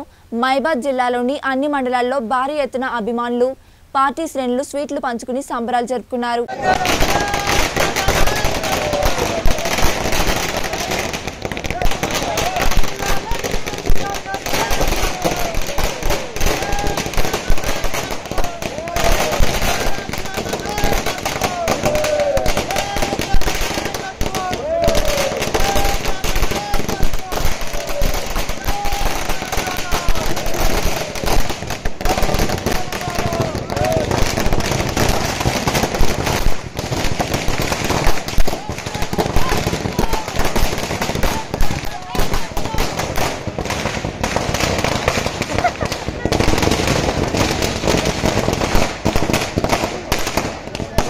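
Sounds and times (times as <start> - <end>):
crowd shouting: 6.5 - 36.0, 37.2 - 48.8
firecrackers popping: 6.5 - 51.0.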